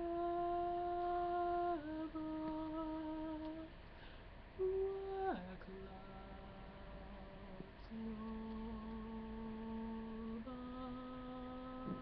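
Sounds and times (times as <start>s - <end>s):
man singing unaccompanied: 0.0s - 3.7s, 4.6s - 12.0s.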